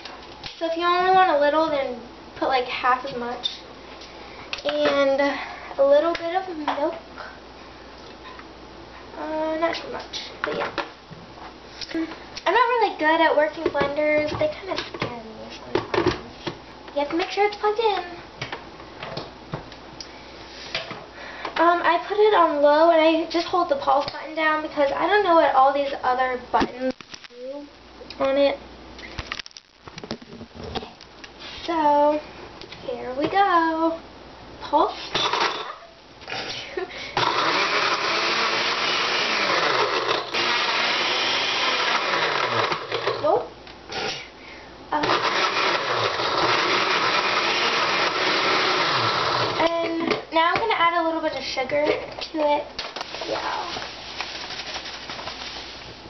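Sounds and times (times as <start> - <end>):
blender crushing ice: 35.2 - 35.7, 37.2 - 44.2, 45.0 - 49.7.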